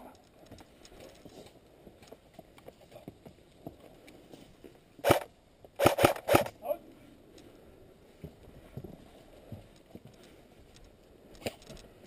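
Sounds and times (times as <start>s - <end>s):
rustling: 0.0s - 12.0s
faint footsteps: 7.0s - 12.0s.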